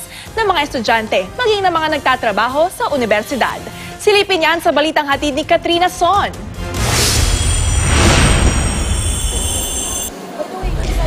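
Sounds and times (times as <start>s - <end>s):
rushing whoosh: 6.8s - 10.1s
high steady ringing tones: 7.1s - 10.1s
low rumble: 7.3s - 10.1s.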